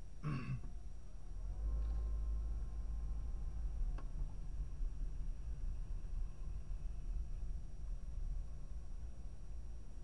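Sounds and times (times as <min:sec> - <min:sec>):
person clearing throat: 0:00.2 - 0:00.7
car cabin rumble: 0:01.7 - 0:10.0.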